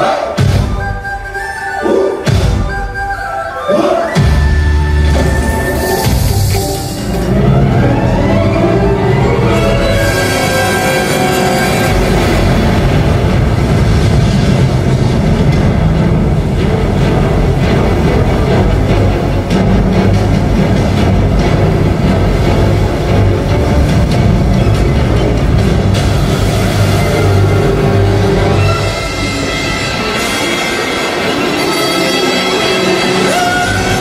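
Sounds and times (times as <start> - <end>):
show music over loudspeakers: 0.0 - 13.9.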